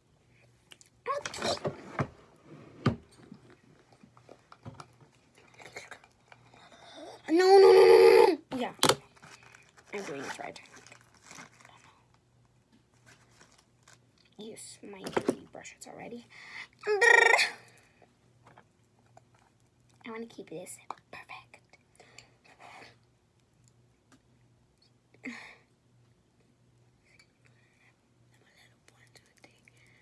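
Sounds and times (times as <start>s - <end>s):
rustling: 9.1s - 12.0s, 12.9s - 14.1s
girl's wordless vocal sound: 16.8s - 17.6s.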